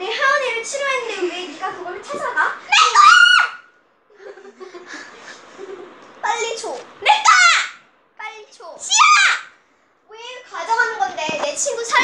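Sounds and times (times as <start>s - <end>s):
girl's high-pitched shriek: 2.7s - 3.7s, 8.9s - 9.5s.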